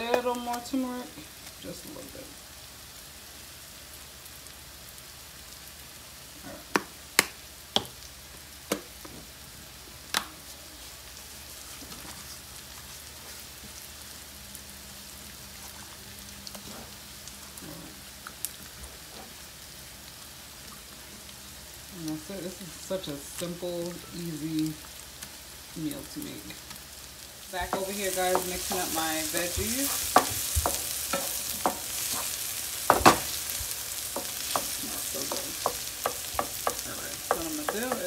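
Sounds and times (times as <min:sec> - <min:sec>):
vegetables sizzling in a pan: 0:00.0 - 0:38.0.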